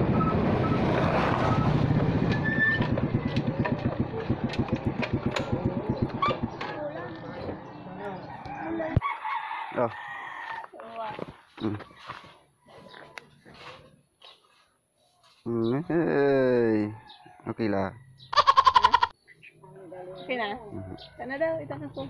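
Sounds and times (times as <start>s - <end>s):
motor scooter engine running: 1.1s - 8.2s
roosters crowing: 7.5s - 10.7s, 16.6s - 19.2s, 20.5s - 21.6s.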